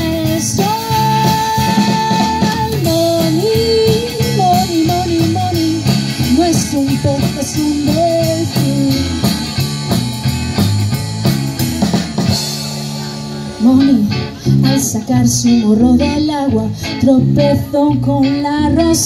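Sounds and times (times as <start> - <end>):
swing band playing: 0.0 - 19.0.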